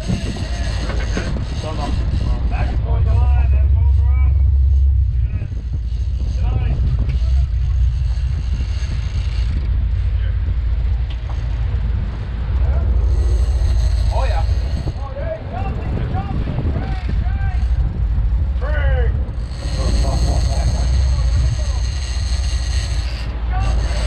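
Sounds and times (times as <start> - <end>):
boat engines rumbling: 0.0 - 24.0.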